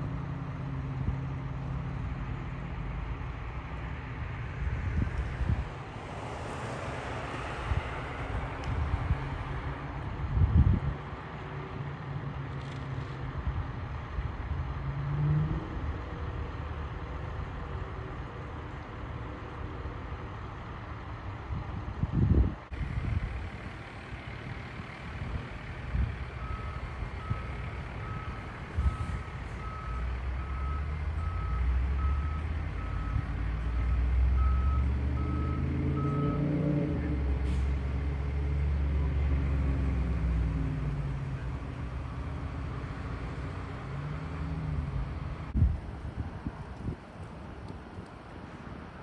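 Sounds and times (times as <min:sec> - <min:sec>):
truck reversing alarm beeping: 0:26.3 - 0:36.8.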